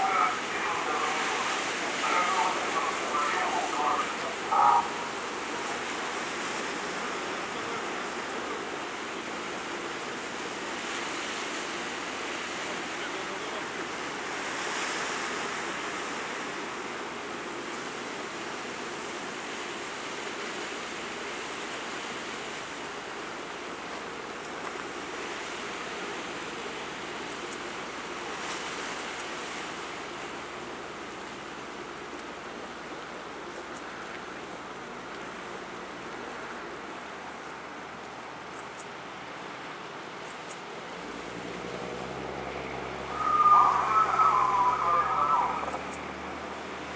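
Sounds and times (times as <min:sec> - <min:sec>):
sea surf washing on shore: 0:00.0 - 0:46.9.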